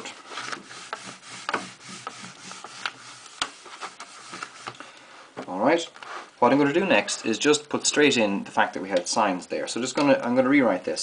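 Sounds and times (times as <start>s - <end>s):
rubbing on whiteboard: 0.0s - 4.8s.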